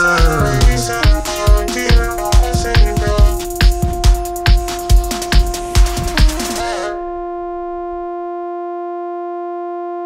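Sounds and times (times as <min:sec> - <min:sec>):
held synthesizer note: 0:00.0 - 0:02.6.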